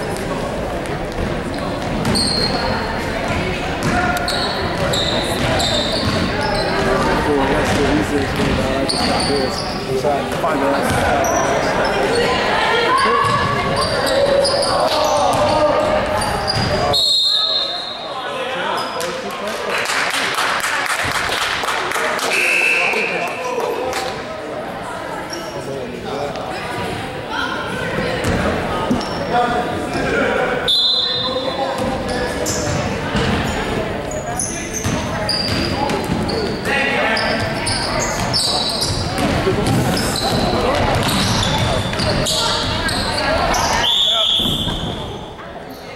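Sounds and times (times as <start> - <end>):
spectator chatter: 0.0 - 45.9
basketball bouncing on hardwood floor: 7.6 - 8.6.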